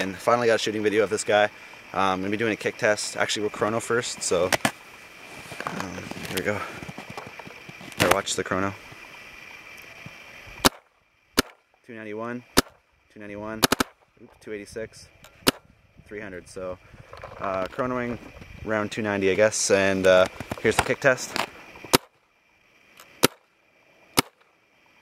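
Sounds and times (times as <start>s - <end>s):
paintball marker firing: 10.6s - 11.6s, 12.6s - 12.8s, 13.6s - 14.0s, 15.4s - 15.6s, 21.9s - 22.1s, 23.2s - 23.4s, 24.2s - 24.4s
paintball marker popping: 11.4s - 11.6s, 13.6s - 14.0s.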